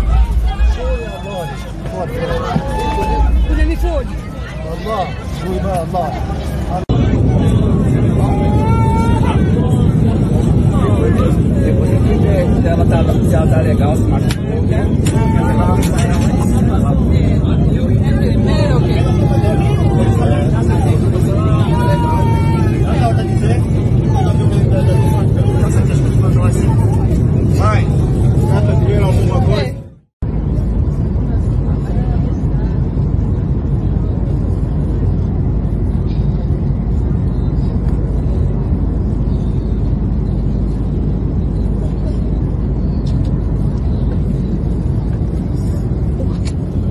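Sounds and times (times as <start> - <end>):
airliner cabin rumble: 0.0 - 46.9
passengers' voices and cries: 0.0 - 46.9.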